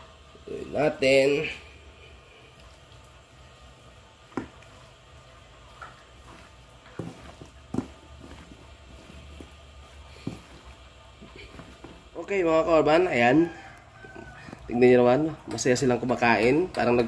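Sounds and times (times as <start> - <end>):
wet squishing of food: 1.4 - 17.0.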